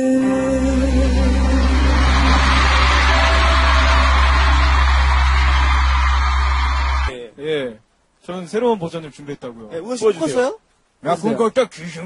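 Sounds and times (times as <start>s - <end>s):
steady low bass tone: 0.2s - 7.1s
concert crowd noise: 0.3s - 7.1s.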